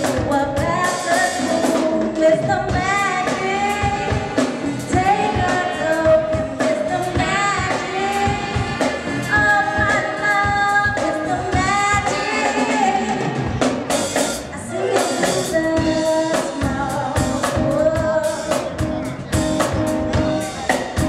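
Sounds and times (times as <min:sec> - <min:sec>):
bass: 0:00.0 - 0:21.0
drum kit beat: 0:00.0 - 0:21.0
sliding lead melody: 0:00.0 - 0:21.0.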